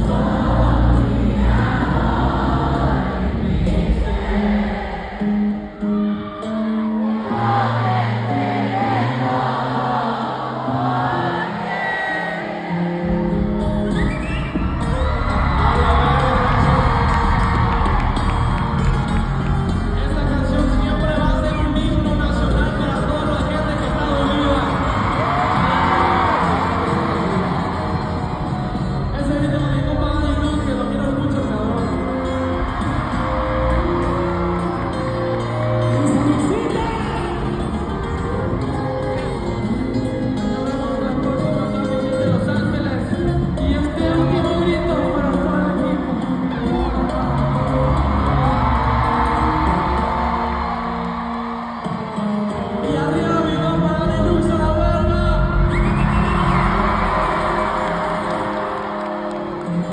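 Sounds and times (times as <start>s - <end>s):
crowd yelling and whooping: 0.0s - 41.1s, 43.9s - 59.9s
live band music with singing: 0.0s - 59.9s.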